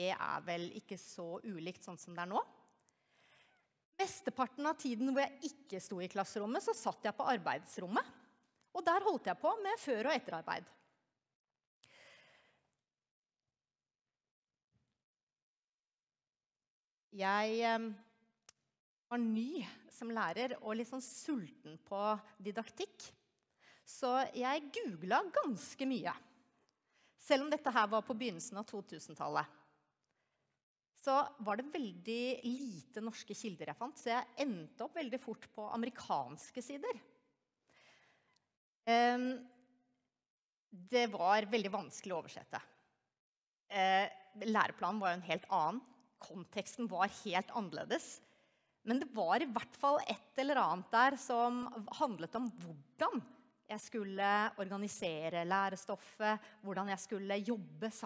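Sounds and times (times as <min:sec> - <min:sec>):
woman talking: 0:00.0 - 0:02.4, 0:04.0 - 0:08.1, 0:08.8 - 0:10.7, 0:17.2 - 0:18.0, 0:19.1 - 0:23.1, 0:23.9 - 0:26.2, 0:27.2 - 0:29.5, 0:31.0 - 0:37.0, 0:38.9 - 0:39.4, 0:40.8 - 0:42.6, 0:43.7 - 0:48.2, 0:48.9 - 0:58.0
woman breathing into microphone: 0:11.9 - 0:12.6.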